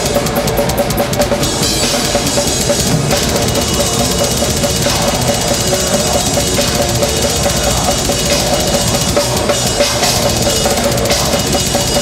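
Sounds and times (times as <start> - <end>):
death metal band playing: 0.0 - 12.0
distorted guitars: 0.0 - 12.0
fast drumming with cymbals: 0.0 - 12.0.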